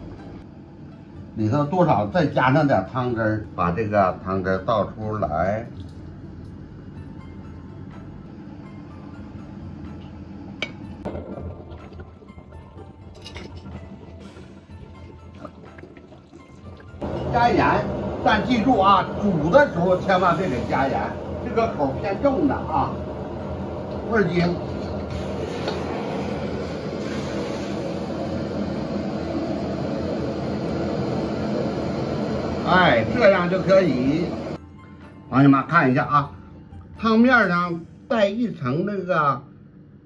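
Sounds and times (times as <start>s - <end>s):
quiet background music: 0.0s - 40.0s
gas burner roaring: 6.2s - 34.6s
broth pouring into wok: 11.1s - 23.0s, 25.0s - 29.5s.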